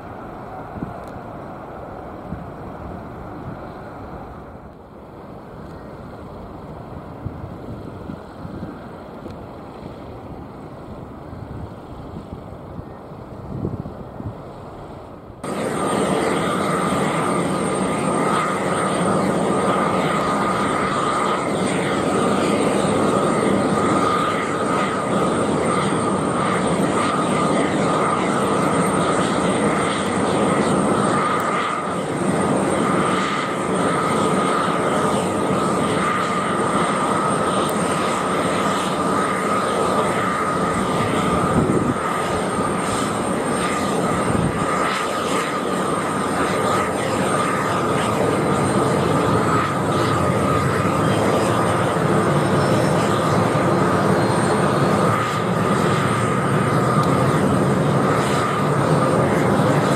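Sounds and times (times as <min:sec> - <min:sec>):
high fan whine: 0:00.0 - 0:59.9
jet engines running loud: 0:00.0 - 0:59.9.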